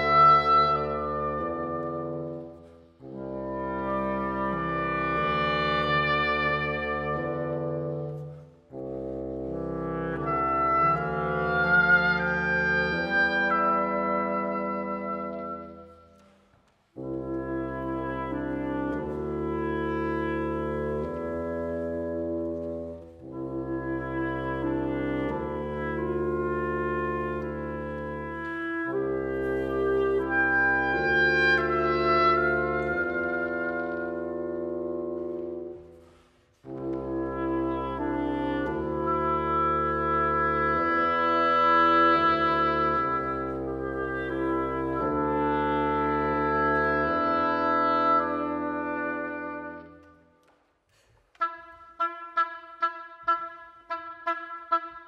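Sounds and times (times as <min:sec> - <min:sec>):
oboe staccato notes: 0:36.6 - 0:50.2, 0:51.2 - 0:55.0.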